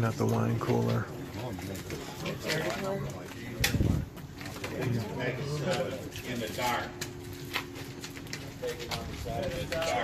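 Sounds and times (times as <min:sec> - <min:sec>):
low murmuring voices: 0:00.0 - 0:10.0.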